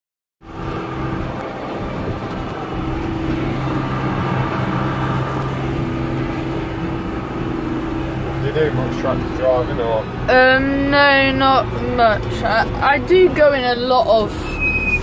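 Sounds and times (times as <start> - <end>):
tractor engine drone: 0.4 - 15.0.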